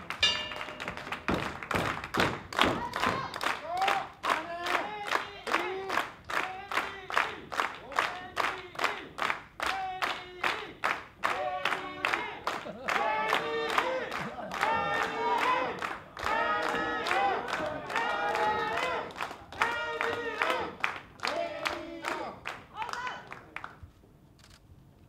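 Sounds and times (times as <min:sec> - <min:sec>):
audience clapping in rhythm: 0:00.0 - 0:23.8.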